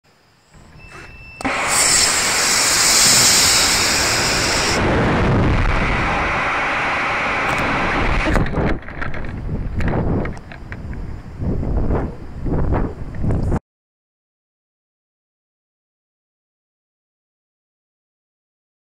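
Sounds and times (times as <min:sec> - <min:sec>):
rocket motor hissing rush: 0:00.9 - 0:08.8
wind rumble on microphone: 0:02.5 - 0:13.6.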